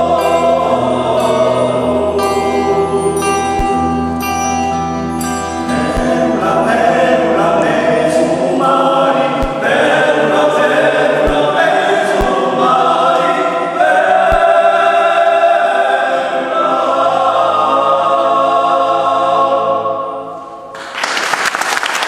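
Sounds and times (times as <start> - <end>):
male choir singing polyphony: 0.0 - 3.7, 5.7 - 20.7.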